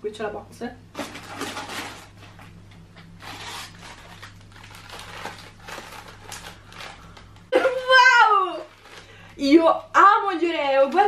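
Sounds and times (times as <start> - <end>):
plastic wrappers rustling: 1.0 - 7.4, 8.3 - 9.9.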